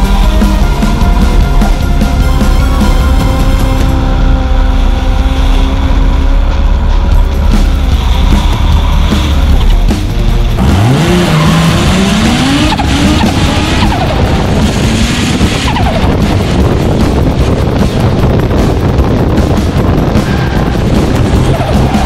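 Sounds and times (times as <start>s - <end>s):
car engine revving: 0.0s - 22.0s
tyres skidding: 0.0s - 22.0s.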